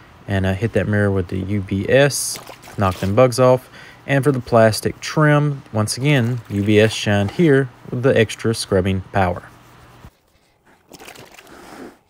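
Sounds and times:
wet sponge scrubbing plastic trim: 2.1s - 3.4s, 5.7s - 7.6s.

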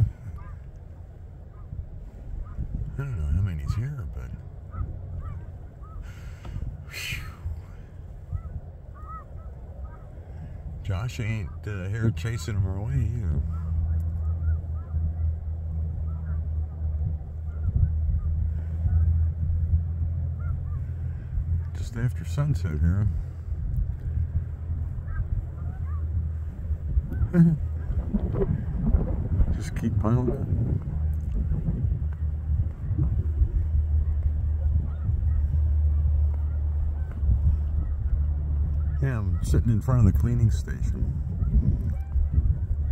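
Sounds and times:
flock of geese calling: 0.0s - 30.4s, 32.1s - 42.9s
steady low rumble: 0.0s - 42.9s.

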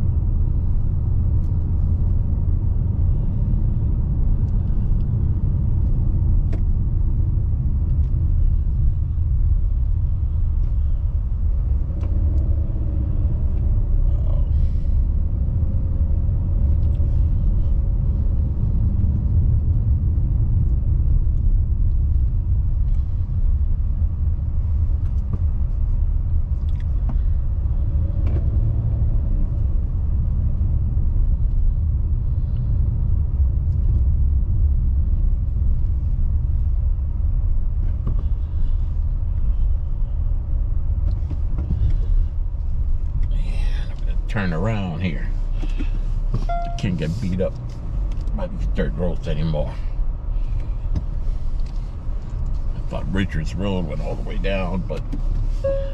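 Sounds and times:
car road noise rumble: 0.0s - 55.9s.

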